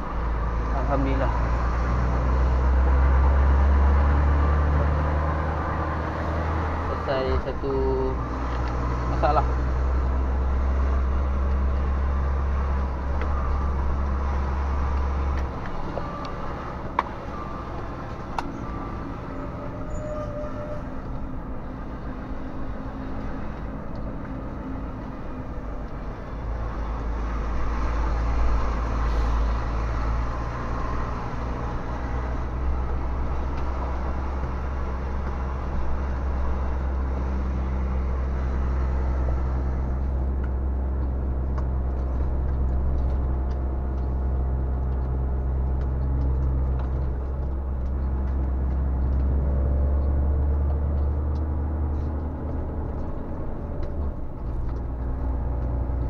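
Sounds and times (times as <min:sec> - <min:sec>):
truck diesel engine drone: 0:00.0 - 0:56.0.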